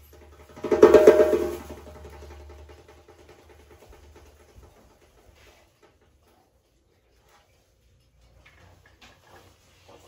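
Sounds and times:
djembe strikes: 0.5 - 2.1.

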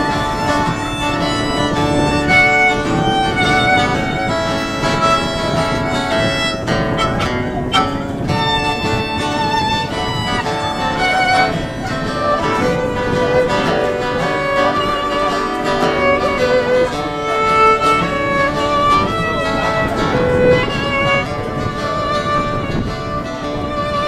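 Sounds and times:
fiddle playing a melody: 0.0 - 24.0
strummed acoustic guitar: 0.0 - 24.0.

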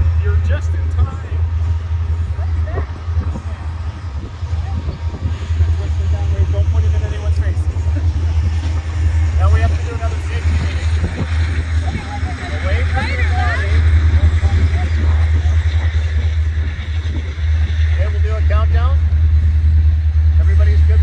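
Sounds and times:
faint chatter of people: 0.0 - 18.5
steady low rumble: 0.0 - 21.0.

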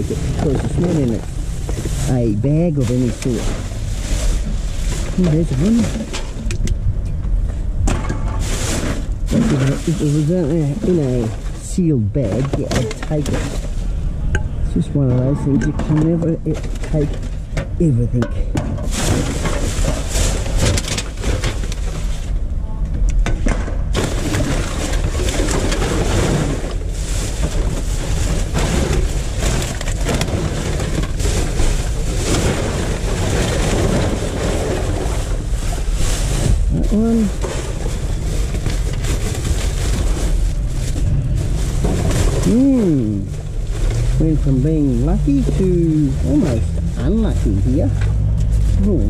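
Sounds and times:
plastic bags rustling: 0.0 - 6.7, 7.6 - 18.0, 18.8 - 22.5, 23.8 - 49.0.

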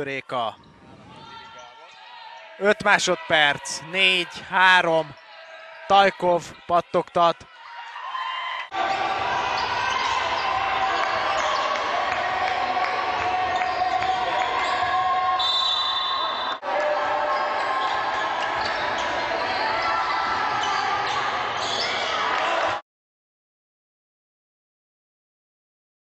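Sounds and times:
crowd noise in a large hall: 0.0 - 22.8.

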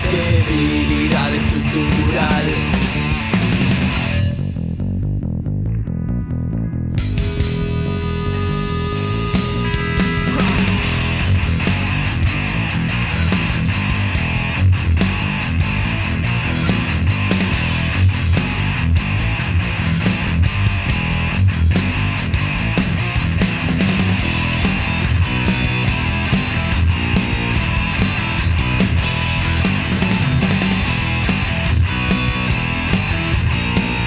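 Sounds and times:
drums: 0.0 - 5.8, 6.8 - 34.0
bass guitar: 0.0 - 34.0
electric guitar: 0.0 - 34.0.

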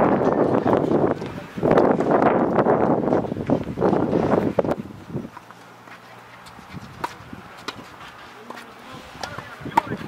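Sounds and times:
wind buffeting microphone: 0.0 - 5.6, 6.4 - 8.2, 8.8 - 10.0.

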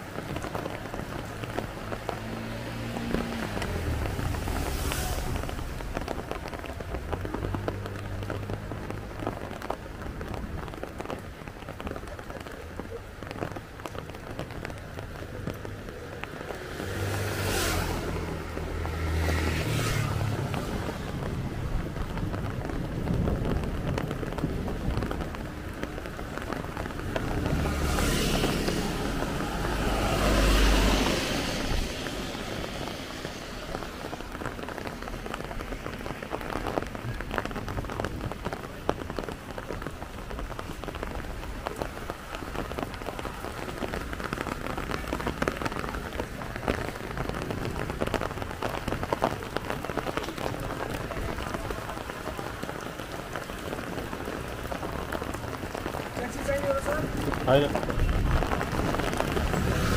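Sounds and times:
rain on a wet street: 0.0 - 59.9
deep rushing rumble: 1.6 - 8.6, 18.0 - 42.4.

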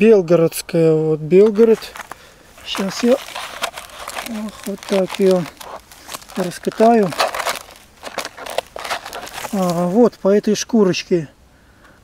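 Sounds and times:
sanding cloth crinkling and rustling: 1.6 - 10.2.

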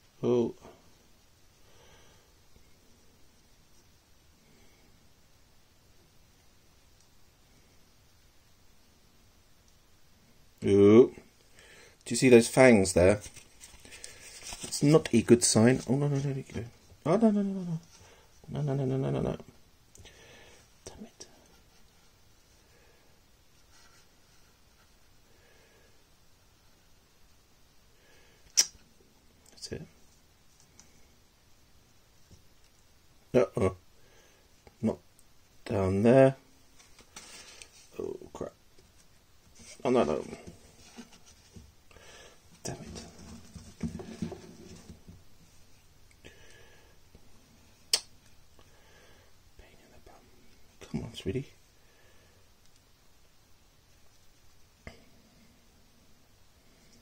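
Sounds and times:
faint whisper: 20.8 - 22.1, 49.5 - 51.6
sharp click: 28.5 - 28.8.

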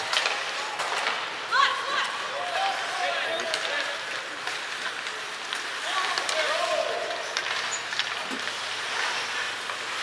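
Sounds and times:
sticks and skates clicking on ice: 0.0 - 10.0.

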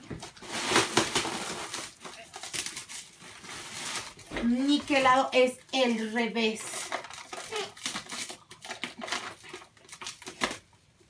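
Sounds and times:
plastic wrap and paper crinkling: 0.0 - 11.0.

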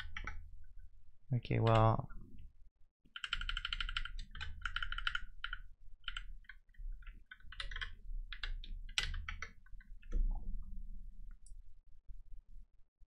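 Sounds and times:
typing on computer keyboard: 3.1 - 10.2.

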